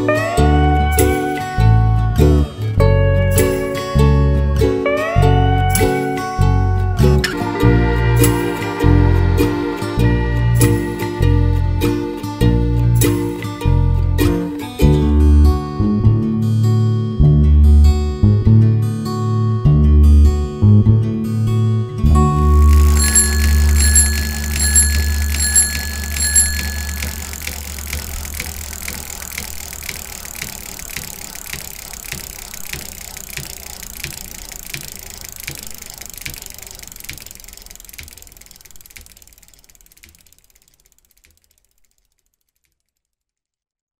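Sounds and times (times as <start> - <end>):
bicycle freewheel ticking: 0.0 - 14.7, 22.1 - 43.7
bicycle bell ringing: 22.2 - 31.9.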